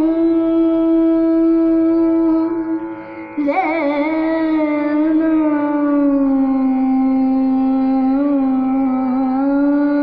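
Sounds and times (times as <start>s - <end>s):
steady drone: 0.0s - 10.0s
woman singing sustained note: 0.0s - 10.0s.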